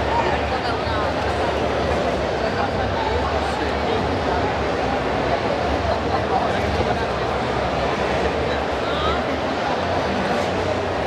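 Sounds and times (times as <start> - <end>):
audience chatter: 0.0 - 11.0.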